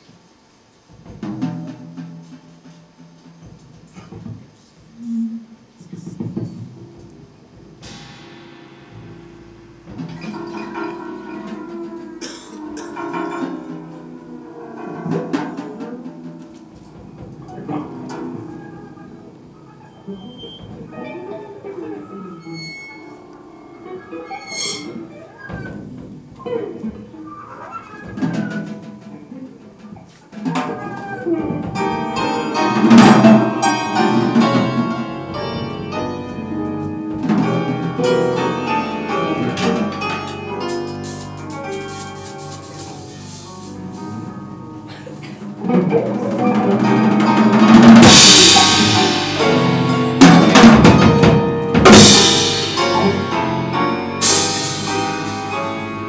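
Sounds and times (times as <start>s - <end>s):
piano: 0.0s - 56.0s
jazz band playing: 6.8s - 56.0s
drum cymbals struck with sticks: 7.1s - 14.1s, 31.7s - 44.3s, 46.8s - 56.0s
bowed double bass: 30.8s - 56.0s.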